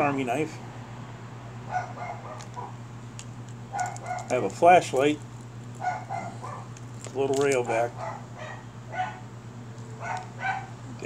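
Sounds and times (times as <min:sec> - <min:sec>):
steady low hum: 0:00.0 - 0:11.0
dog barking: 0:01.7 - 0:02.8, 0:03.8 - 0:04.4, 0:05.8 - 0:06.7, 0:07.9 - 0:09.3, 0:10.0 - 0:10.8.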